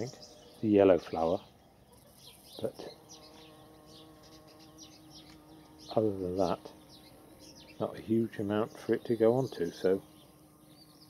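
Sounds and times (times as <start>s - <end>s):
bumblebee buzzing: 0.0s - 11.0s.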